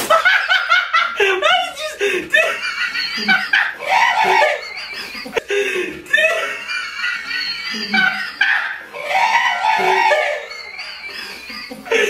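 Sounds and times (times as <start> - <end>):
group of people laughing: 0.0 - 12.0
high-pitched squealing laugh: 0.1 - 5.5, 6.1 - 12.0.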